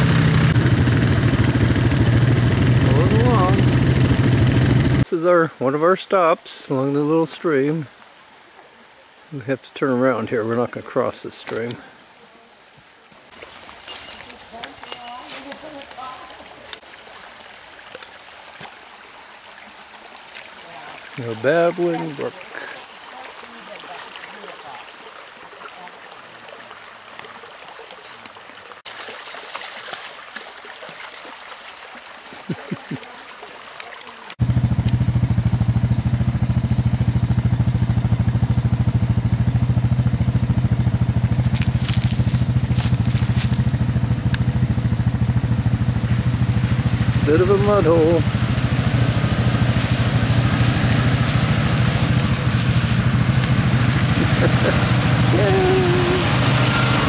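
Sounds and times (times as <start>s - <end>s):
atv engine running: 0.0s - 5.1s, 34.4s - 57.0s
stream babbling over stones: 0.0s - 34.4s, 41.0s - 57.0s
person's voice: 2.8s - 3.8s, 9.4s - 11.9s, 20.8s - 22.8s, 47.2s - 48.4s, 54.2s - 56.4s.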